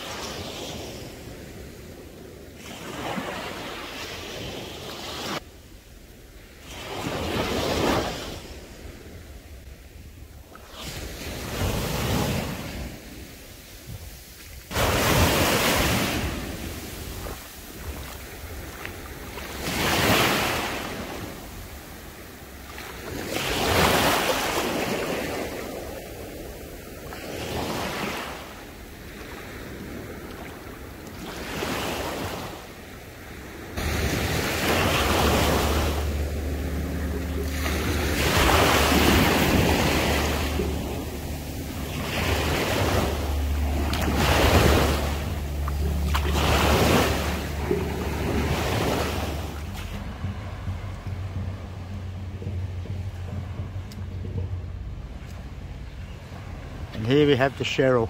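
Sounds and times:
small waves on sandy shore: 0.0s - 58.0s
wind rumble on microphone: 6.1s - 57.0s.

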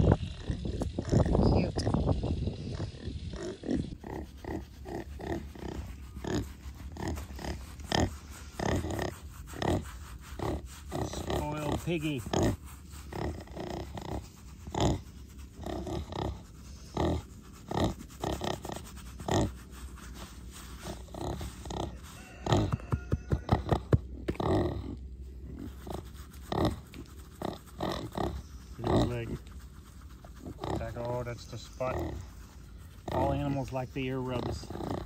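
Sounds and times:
pig grunting: 0.0s - 19.6s, 20.8s - 22.7s, 23.4s - 29.5s, 30.2s - 35.0s.

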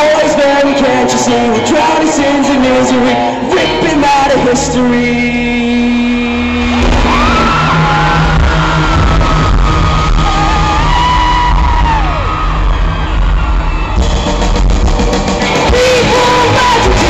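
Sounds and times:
live rock band: 0.0s - 17.0s.

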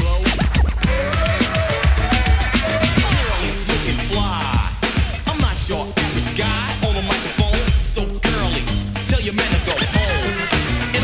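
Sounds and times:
bass-heavy hip hop beat: 0.0s - 11.0s
vinyl record scratching: 0.0s - 11.0s.

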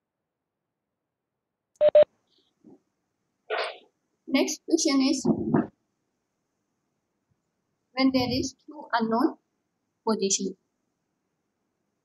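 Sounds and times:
short electronic beeps: 1.8s - 2.1s.

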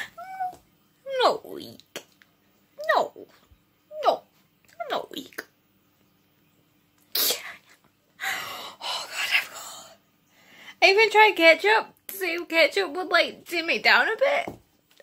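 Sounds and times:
sneeze-like burst: 7.1s - 7.6s.

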